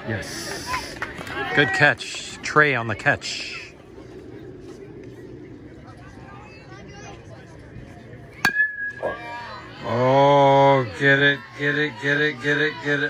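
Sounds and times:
murmur of spectators: 0.0s - 13.0s
voices rising: 0.0s - 13.0s
baseball bat cracking ball: 8.4s - 9.2s.

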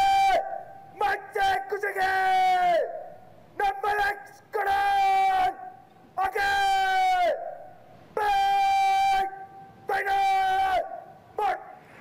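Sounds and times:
person shouting commands: 0.0s - 7.6s, 8.2s - 11.8s.

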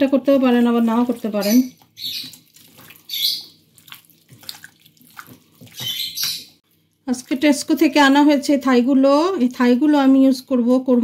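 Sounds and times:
hand squelching raw chicken: 0.4s - 6.9s.

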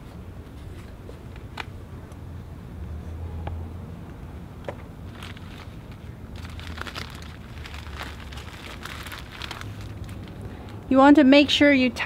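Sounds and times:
plastic bag crinkling: 5.1s - 10.8s.

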